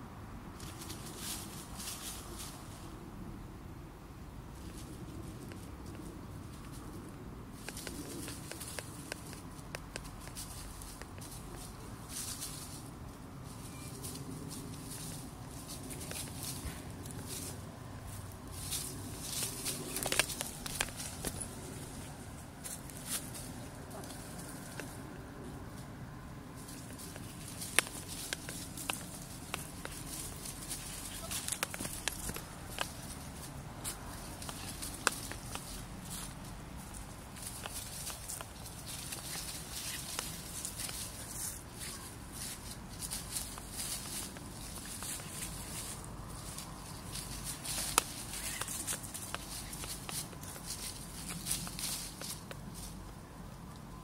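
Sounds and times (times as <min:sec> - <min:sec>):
dogs scuffling in dry leaves: 0:00.6 - 0:03.1, 0:07.7 - 0:25.8, 0:26.5 - 0:53.0
sharp crackles: 0:07.5 - 0:25.2, 0:26.5 - 0:53.0.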